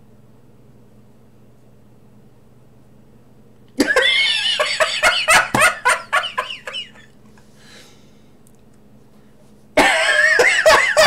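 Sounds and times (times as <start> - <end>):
man laughing: 3.8 - 7.2, 9.8 - 11.0.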